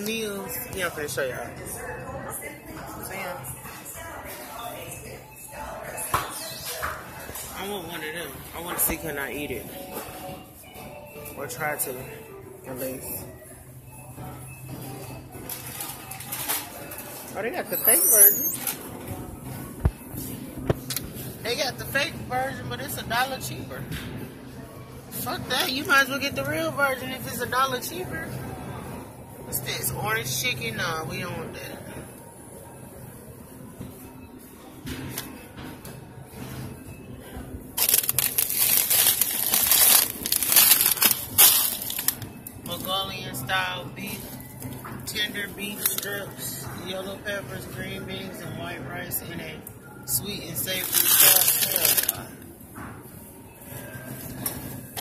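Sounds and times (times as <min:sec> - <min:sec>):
faint background music: 0:00.0 - 0:55.0
shop noise: 0:00.0 - 0:55.0.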